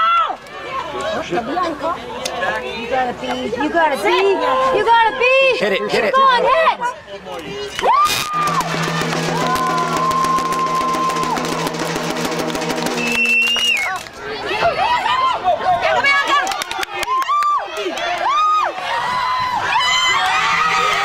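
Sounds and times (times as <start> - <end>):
spectators cheering and shouting: 0.0 - 1.1, 7.7 - 21.0
long steady horn-like tone: 8.2 - 13.8.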